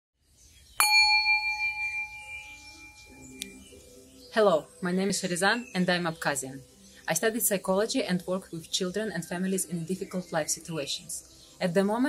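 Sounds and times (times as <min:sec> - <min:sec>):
bright bell chime: 0:00.8 - 0:03.6
soft background music: 0:01.3 - 0:12.0.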